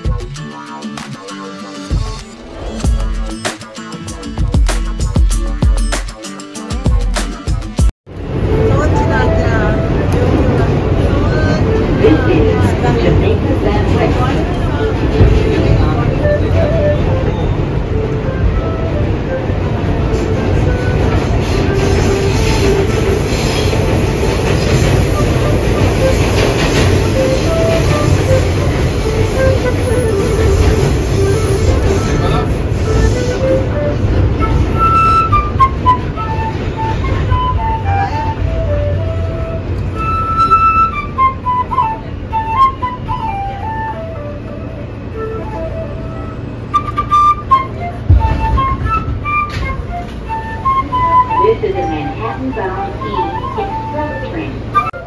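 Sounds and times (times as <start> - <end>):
subway car rumbling: 0.0 - 55.0
small flute melody: 8.3 - 13.3, 14.1 - 55.0.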